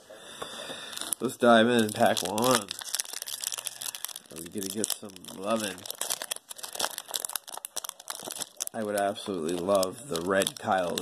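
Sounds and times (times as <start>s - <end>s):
foil wrapper crinkling: 0.9s - 11.0s.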